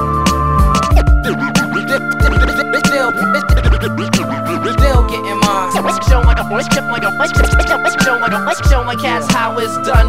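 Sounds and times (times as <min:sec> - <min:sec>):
hip hop beat: 0:00.0 - 0:10.0
turntable scratching: 0:00.8 - 0:10.0.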